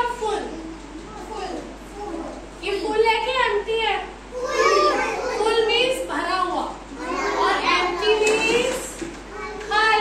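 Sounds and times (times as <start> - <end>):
children talking and calling out: 0.4 - 2.6, 4.2 - 6.1, 6.7 - 9.8.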